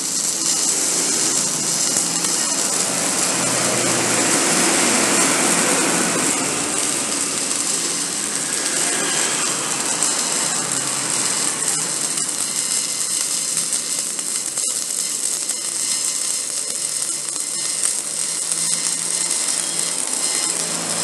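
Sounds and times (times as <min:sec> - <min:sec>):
arc welding crackling and hissing: 0:00.0 - 0:21.0
welding arc sharp pops: 0:00.0 - 0:21.0.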